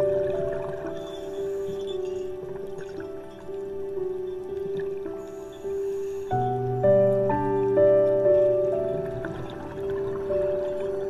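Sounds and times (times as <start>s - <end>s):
slow soothing background music: 0.0s - 11.0s.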